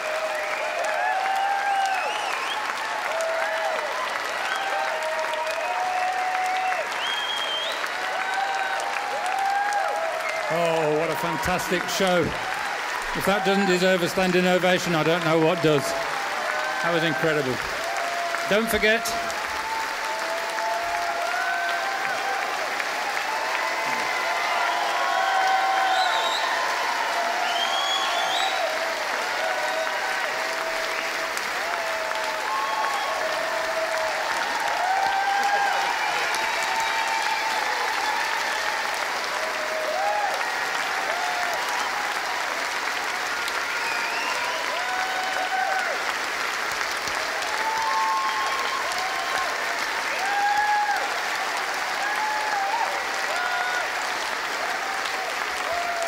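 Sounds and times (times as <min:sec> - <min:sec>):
audience applause: 0:00.0 - 0:56.0
crowd cheering: 0:00.0 - 0:56.0.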